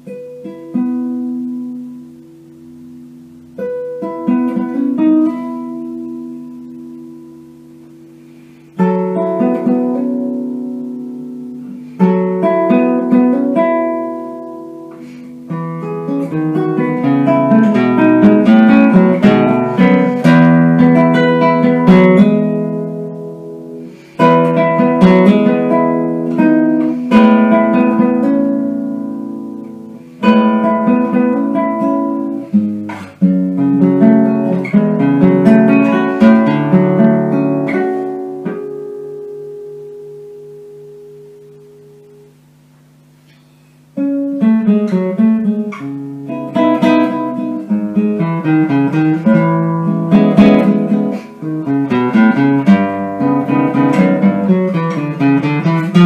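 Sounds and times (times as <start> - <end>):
classical guitar fingerstyle: 0.0 - 56.0.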